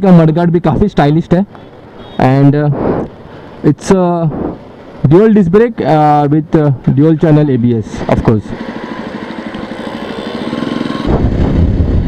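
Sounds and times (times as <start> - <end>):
motorcycle engine accelerating: 8.0 - 12.0.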